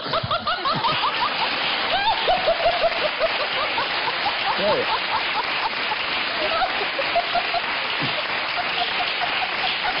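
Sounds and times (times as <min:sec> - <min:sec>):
audience applauding: 0:00.0 - 0:10.0
audience laughter: 0:00.0 - 0:10.0.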